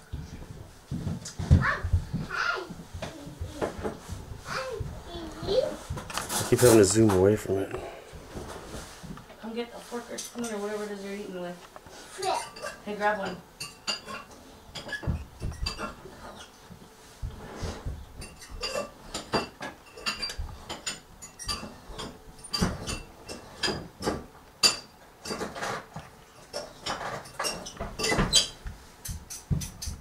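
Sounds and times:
cutlery and dishes clinking: 12.2s - 16.5s, 18.2s - 30.0s.

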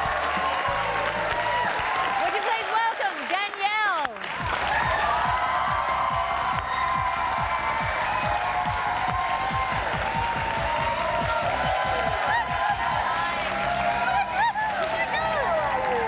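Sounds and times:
whoops: 0.0s - 2.3s, 4.6s - 16.0s
audience applauding and cheering: 0.0s - 16.0s
entrance music with drum beat: 4.3s - 13.3s.

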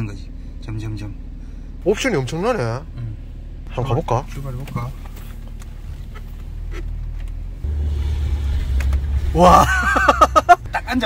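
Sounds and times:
car cabin engine rumble: 0.0s - 11.0s.

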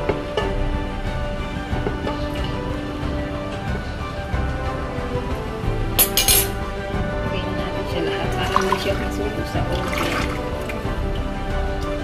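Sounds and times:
background music: 0.0s - 12.0s
broth pouring and splashing: 8.1s - 12.0s.

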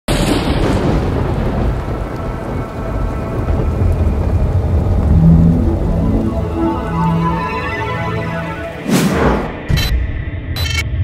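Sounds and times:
steady rain: 0.1s - 8.8s
rolling thunder rumble: 0.1s - 9.5s
thunder crack: 0.1s - 9.6s
low sustained musical notes: 3.8s - 8.8s.

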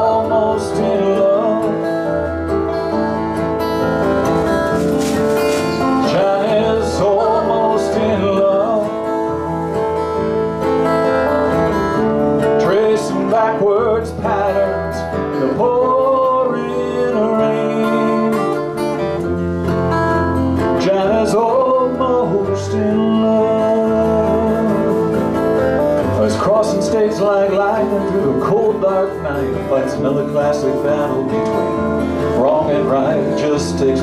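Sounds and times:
electric bass: 0.0s - 34.0s
strummed acoustic guitars: 0.0s - 34.0s.

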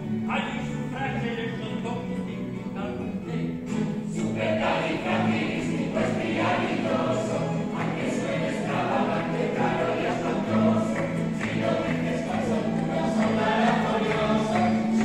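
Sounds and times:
plucked-string orchestra playing: 0.0s - 15.0s
voices singing along: 3.2s - 15.0s.

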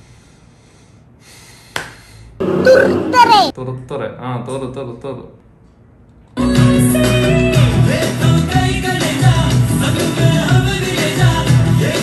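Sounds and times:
person's drawn-out vocal sound: 2.6s - 3.5s.

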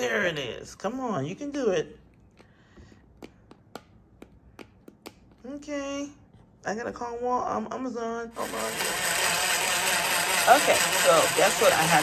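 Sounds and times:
blender clicking: 8.4s - 12.0s.

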